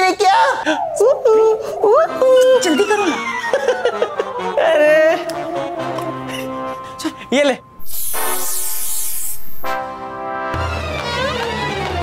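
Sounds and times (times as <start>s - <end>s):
aerosol spray can hissing: 7.8s - 9.8s.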